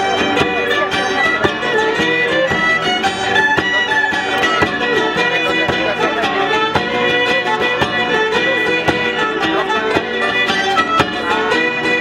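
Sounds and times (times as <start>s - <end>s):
fiddle-led folk band playing: 0.0s - 12.0s.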